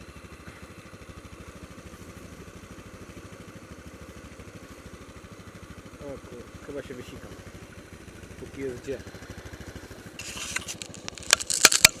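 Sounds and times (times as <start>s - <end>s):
quad engine idling: 0.0s - 12.0s
camera handling rustle and clicks: 10.2s - 12.0s.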